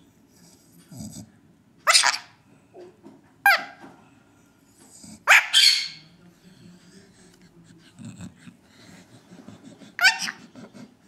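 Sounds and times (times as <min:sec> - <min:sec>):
sharp animal calls: 0:05.3 - 0:06.1.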